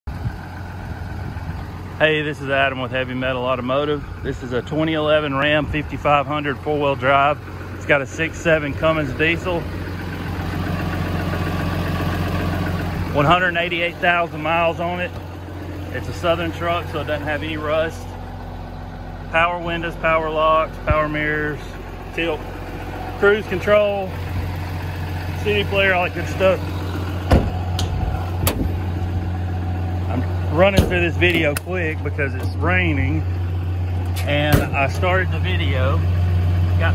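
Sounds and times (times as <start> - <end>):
diesel engine idling: 0.1 - 36.9.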